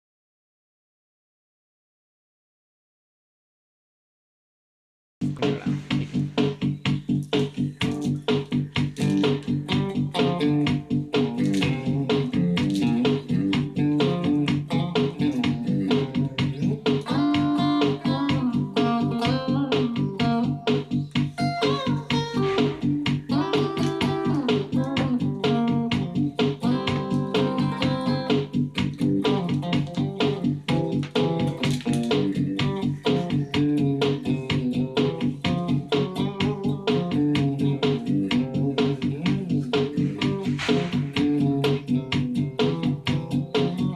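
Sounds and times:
backing track with beat and bass: 0:05.2 - 0:43.9
electric guitar lead solo: 0:07.6 - 0:43.9.

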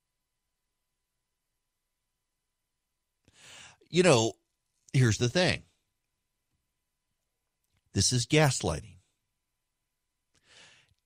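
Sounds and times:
man breathing in: 0:03.3 - 0:03.9, 0:10.4 - 0:11.0
man speaking: 0:03.9 - 0:05.7, 0:07.9 - 0:09.0.

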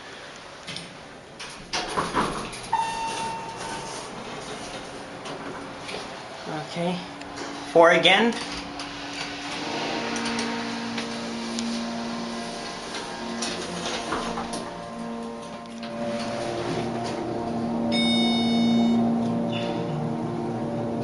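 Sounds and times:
elevator drive humming: 0:00.0 - 0:21.0
elevator clicks: 0:00.7 - 0:06.2
short electronic chime: 0:17.9 - 0:19.8.

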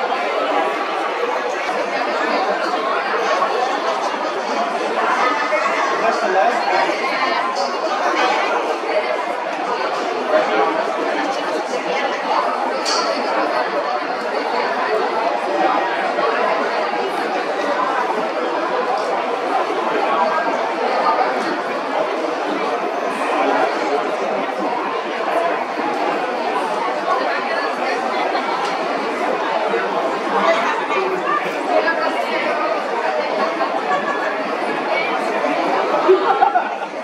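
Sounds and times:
crowd murmur: 0:00.0 - 0:37.0.

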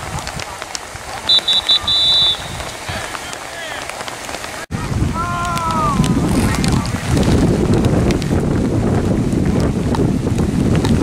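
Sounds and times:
referee's whistle blasts: 0:01.3 - 0:03.3.

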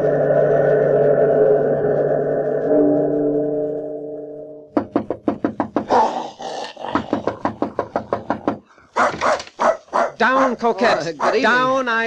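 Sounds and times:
gong ringing: 0:00.0 - 0:04.7
dog barking rapidly: 0:08.9 - 0:11.7.

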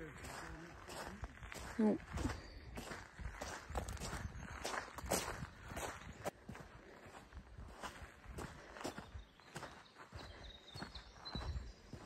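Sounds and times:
footsteps crunching on wet gravel: 0:00.0 - 0:12.0.

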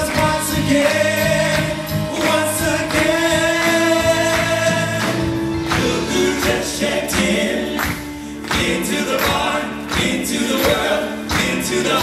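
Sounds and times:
live band playing: 0:00.0 - 0:12.0
male vocal group singing: 0:00.0 - 0:12.0.

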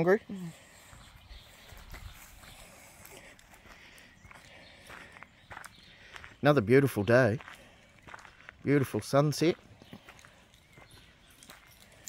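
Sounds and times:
faint footsteps: 0:00.5 - 0:12.0.

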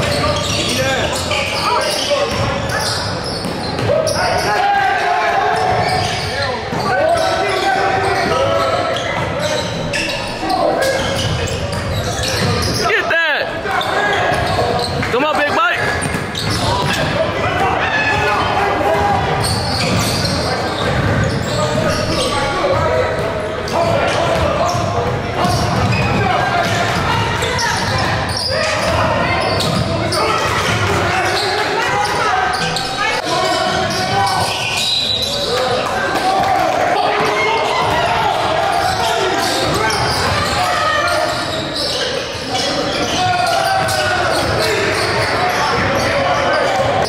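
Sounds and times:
voices echoing in gym: 0:00.0 - 0:47.0.

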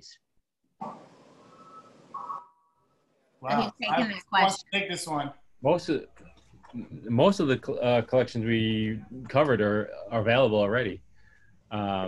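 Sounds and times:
two-tone electronic beep: 0:01.5 - 0:02.5.

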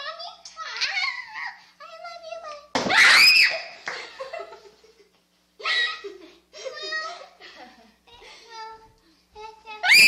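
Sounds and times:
girl speaking: 0:00.0 - 0:02.8, 0:05.6 - 0:07.4, 0:08.1 - 0:09.9
high-pitched scream: 0:02.9 - 0:03.7.

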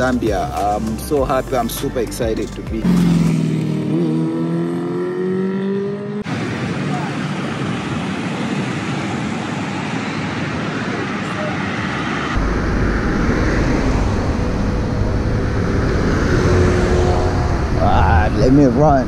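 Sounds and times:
cars driving past: 0:02.8 - 0:19.0
heavy low rumble: 0:12.3 - 0:19.0.

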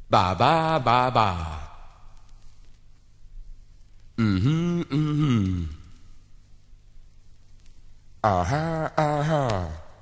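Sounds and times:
man's voice on vinyl record: 0:00.0 - 0:02.8, 0:04.0 - 0:06.2, 0:08.2 - 0:10.0
faint record hiss: 0:00.0 - 0:10.0.

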